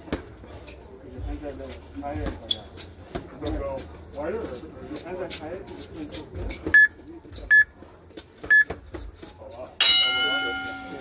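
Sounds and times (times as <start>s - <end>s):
short electronic beeps: 6.8s - 7.7s
bell ringing: 9.8s - 11.0s.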